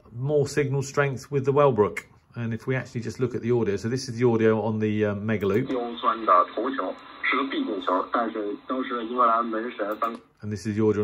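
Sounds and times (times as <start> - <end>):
person talking over radio: 5.6 - 10.2.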